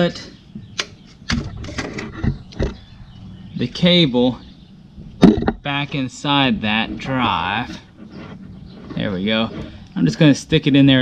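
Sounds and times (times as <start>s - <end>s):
knocks among metal parts: 5.2s - 5.6s.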